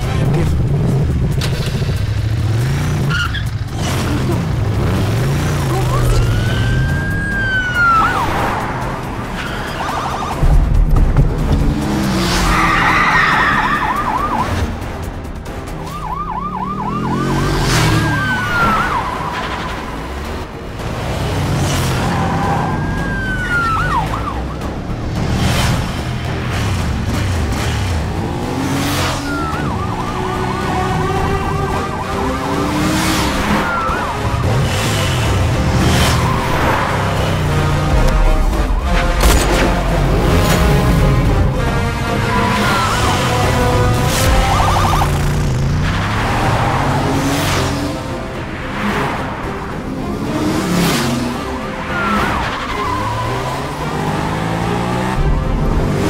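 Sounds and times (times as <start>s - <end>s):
vehicle engine noise: 0.0s - 56.0s
police sirens wailing and yelping: 3.0s - 10.7s, 11.9s - 25.3s, 27.4s - 56.0s.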